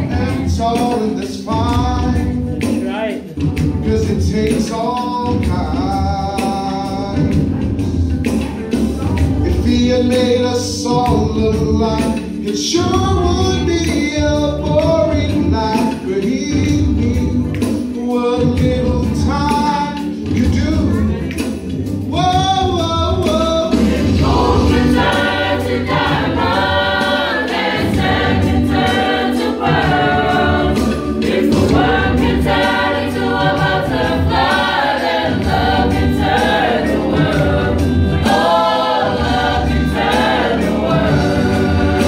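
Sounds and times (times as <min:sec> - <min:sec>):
choir singing gospel: 0:00.0 - 0:42.0.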